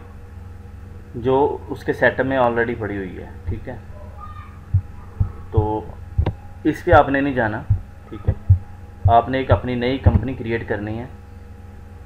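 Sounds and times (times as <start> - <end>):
steady low hum: 0.0 - 12.0
soft low thumps: 3.5 - 3.7, 4.6 - 10.4.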